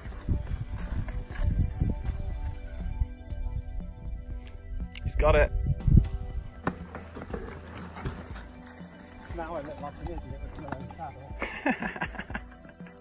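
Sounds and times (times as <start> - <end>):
mountain bikes clicking and rattling: 0.0 - 3.0, 6.6 - 13.0
wind on microphone: 0.0 - 6.6
background music: 0.0 - 13.0.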